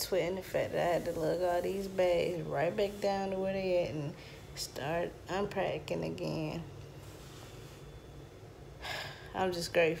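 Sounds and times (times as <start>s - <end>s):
woman speaking: 0.0s - 6.7s, 9.3s - 10.0s
woman breathing: 4.1s - 4.6s, 8.8s - 9.4s.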